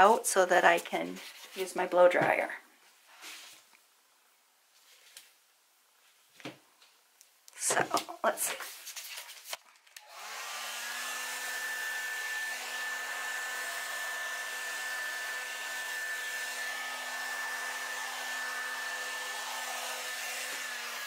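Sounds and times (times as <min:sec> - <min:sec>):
blow dryer running: 0:10.0 - 0:21.0.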